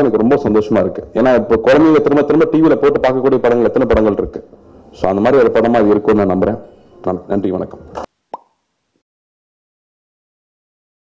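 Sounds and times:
plop with upward pitch glide: 8.3s - 8.6s.

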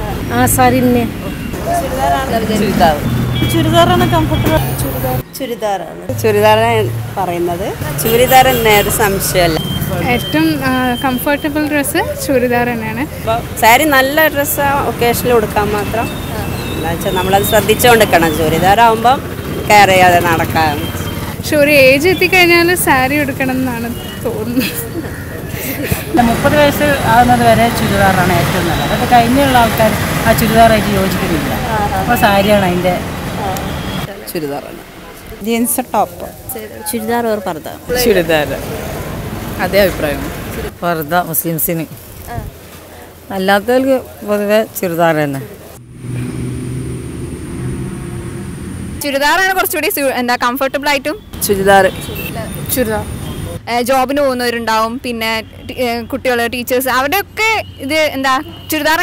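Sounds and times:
vehicle engine rumbling: 0.0s - 5.2s, 5.9s - 36.5s, 45.5s - 49.5s
street traffic noise: 0.0s - 59.0s
woman speaking: 0.3s - 24.9s, 25.8s - 33.1s, 35.4s - 38.5s, 49.0s - 59.0s.

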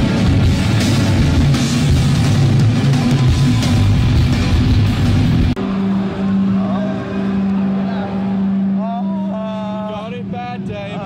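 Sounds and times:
live rock band music: 0.0s - 5.7s.

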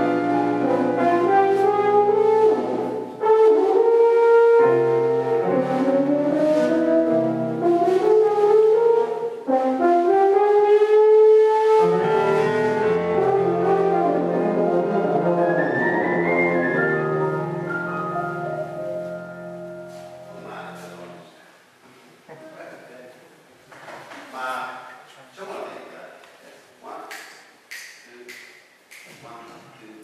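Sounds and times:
double bass: 0.0s - 21.2s
french horn jazz melody: 0.0s - 21.2s
keyboard: 0.0s - 21.2s.

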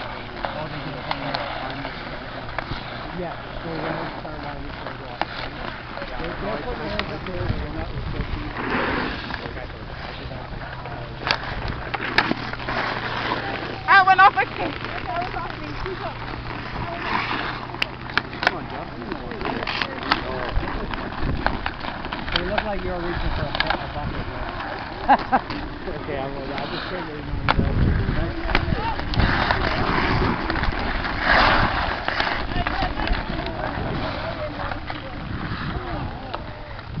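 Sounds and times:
distant voices: 0.0s - 37.0s
skate blades scraping ice: 0.0s - 37.0s
wind noise: 6.3s - 17.7s, 19.7s - 37.0s
stick hitting puck: 11.2s - 13.5s.

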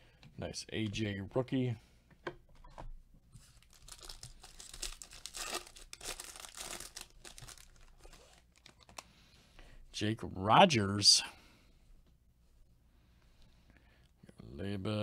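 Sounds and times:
foil wrapper tearing and crinkling: 3.6s - 9.0s.

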